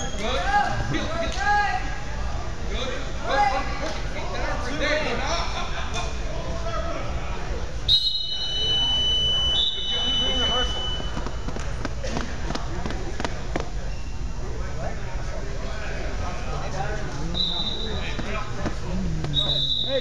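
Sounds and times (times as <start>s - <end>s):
voices chattering in a hall: 0.0s - 20.0s.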